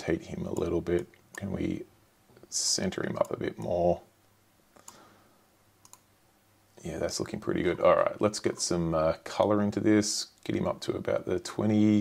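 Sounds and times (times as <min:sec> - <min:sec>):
computer mouse clicks: 0:05.8 - 0:06.1.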